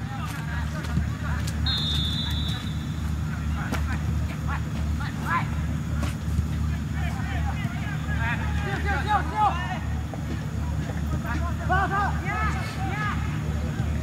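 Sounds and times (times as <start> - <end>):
players shouting: 6.6 - 14.0.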